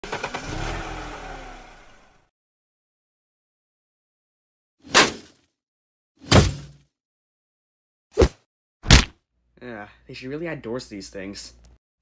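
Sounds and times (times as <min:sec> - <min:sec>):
car engine revving: 0:00.0 - 0:02.3.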